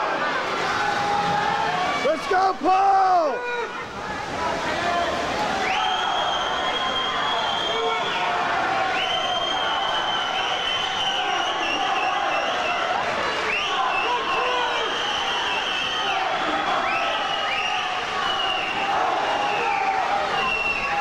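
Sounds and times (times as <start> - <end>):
spectators cheering and shouting: 0.0 - 21.0.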